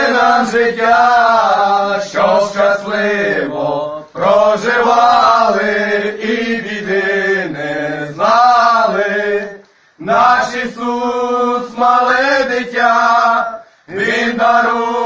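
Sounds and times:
men singing a carol unaccompanied: 0:00.0 - 0:15.0.

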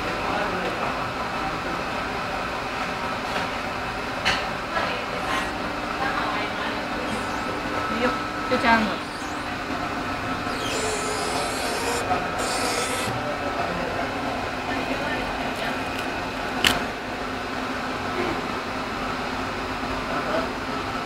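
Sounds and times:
machine mechanical hum: 0:00.0 - 0:21.0.

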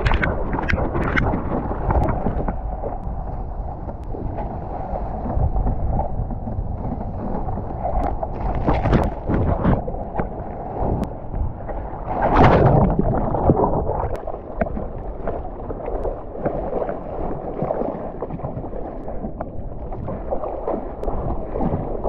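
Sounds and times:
water splashing from paddling: 0:00.0 - 0:11.1, 0:11.7 - 0:22.0
wind buffeting microphone: 0:00.0 - 0:22.0.

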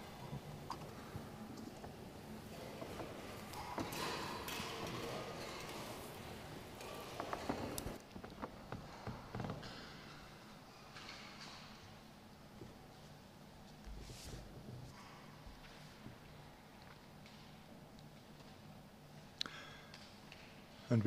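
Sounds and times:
rustles of people moving: 0:00.0 - 0:19.4.

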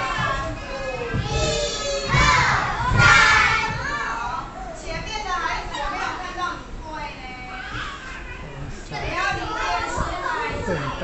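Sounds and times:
young children chattering and shouting: 0:00.0 - 0:11.0.

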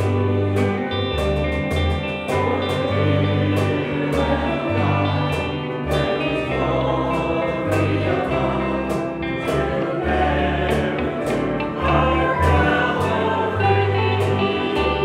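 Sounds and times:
acoustic guitar: 0:00.0 - 0:15.0
choir singing a gospel song: 0:00.0 - 0:15.0
low held bass notes: 0:00.0 - 0:15.0.

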